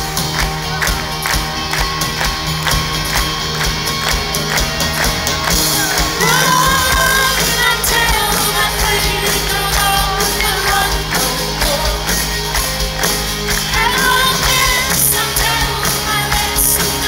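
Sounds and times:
live rock band playing: 0.0s - 17.0s
woman singing: 6.2s - 12.1s, 13.7s - 17.0s.

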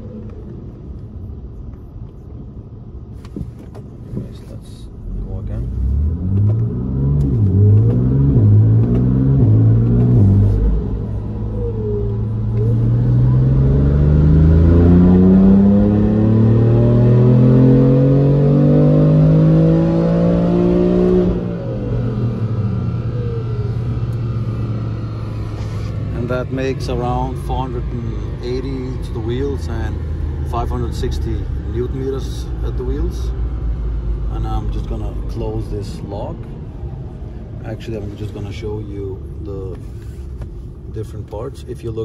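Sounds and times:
turbocharged car engine revving: 5.1s - 36.0s.

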